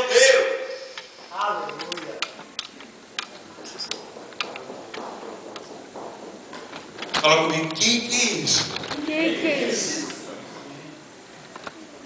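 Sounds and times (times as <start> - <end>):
faint hall room noise: 0.0 - 12.0
sharp clicks and taps: 1.7 - 7.8.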